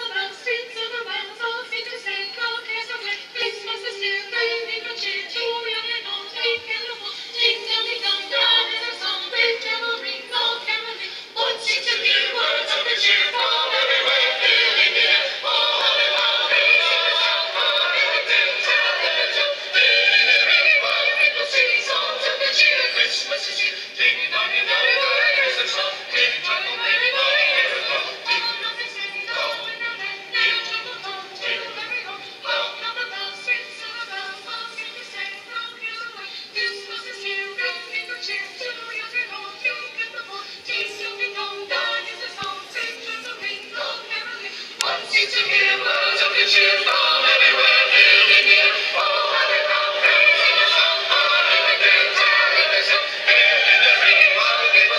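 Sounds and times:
choir singing sustained chords: 0:00.0 - 0:54.9.

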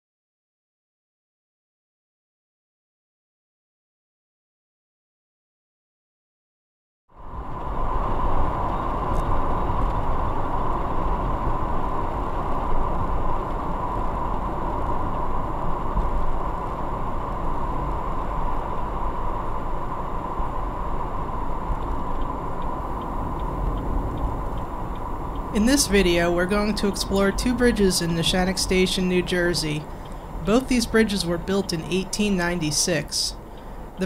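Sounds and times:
car road and engine noise: 0:07.1 - 0:34.0.

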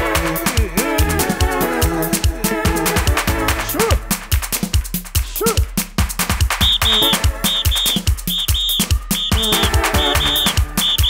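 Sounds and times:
electronic dance music: 0:00.0 - 0:11.0
fast kick-drum beat: 0:00.0 - 0:11.0
high whistle-like lead: 0:06.6 - 0:11.0.

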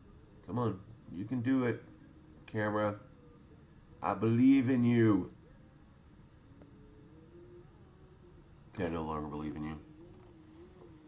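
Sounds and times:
faint thin hum: 0:00.0 - 0:11.0.

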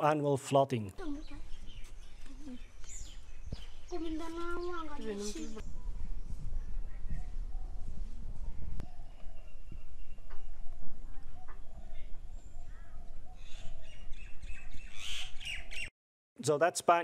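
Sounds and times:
birds calling: 0:01.0 - 0:15.9.

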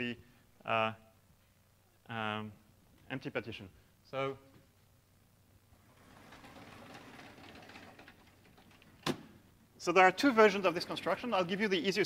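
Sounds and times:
sliding panel scraping along track: 0:05.8 - 0:08.8, 0:10.3 - 0:11.7.

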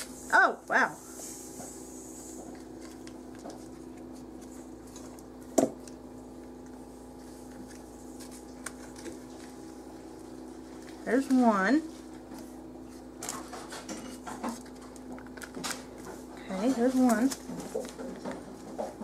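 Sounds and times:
steady hum: 0:00.0 - 0:19.0.

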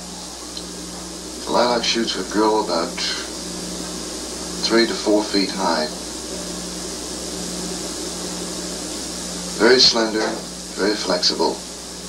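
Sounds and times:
low electrical hum: 0:00.0 - 0:12.0
recording hiss: 0:00.0 - 0:12.0.

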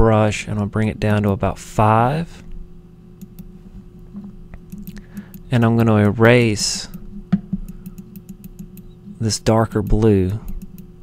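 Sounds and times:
steady low hum: 0:00.0 - 0:11.0
computer mouse clicking: 0:03.2 - 0:03.5, 0:06.9 - 0:09.0, 0:09.8 - 0:10.9.

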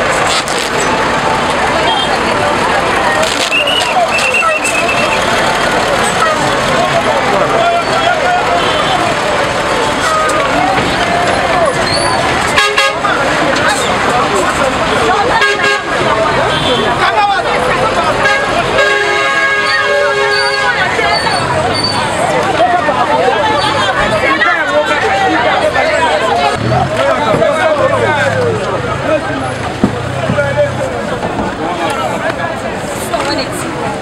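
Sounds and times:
passing traffic: 0:00.0 - 0:34.0
people talking over one another: 0:00.0 - 0:34.0.

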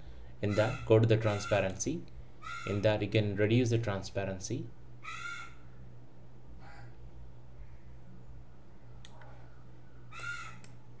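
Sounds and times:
steady low hum: 0:00.0 - 0:11.0
bird calling: 0:00.5 - 0:01.8, 0:02.4 - 0:02.8, 0:05.0 - 0:05.7, 0:10.1 - 0:10.6.

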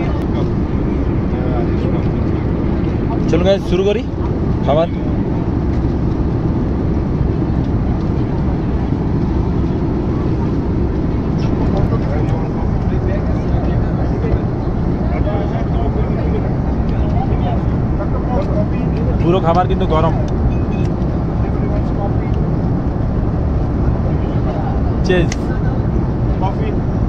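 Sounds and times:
airliner cabin noise: 0:00.0 - 0:27.0
faint passenger voices: 0:00.0 - 0:27.0.

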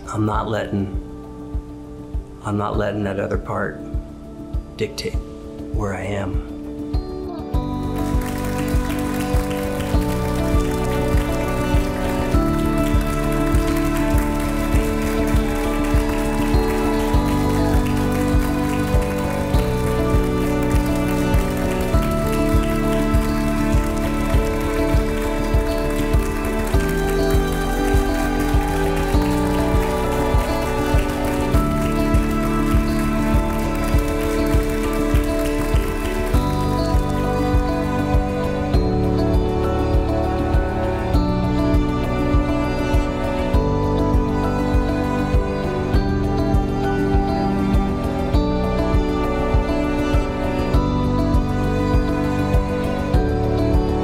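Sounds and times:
music with steady beat: 0:00.0 - 0:54.0
audience applause: 0:07.9 - 0:38.4.

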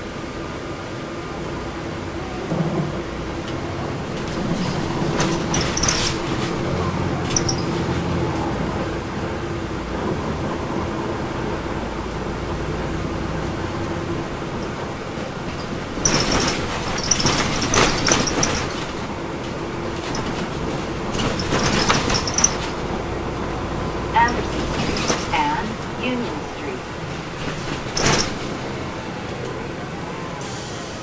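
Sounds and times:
bus diesel engine drone: 0:00.0 - 0:31.0
road noise: 0:00.0 - 0:31.0.

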